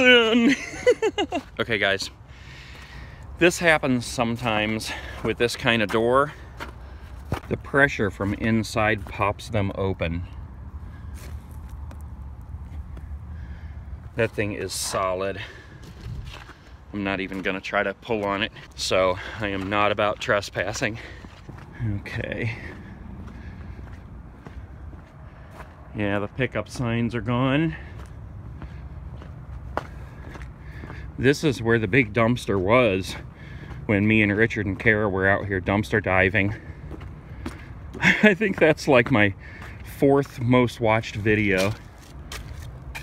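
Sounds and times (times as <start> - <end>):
footsteps on wet slushy pavement: 2.3 - 9.6, 10.2 - 26.9, 27.5 - 43.0
wind rumble on microphone: 15.8 - 16.4.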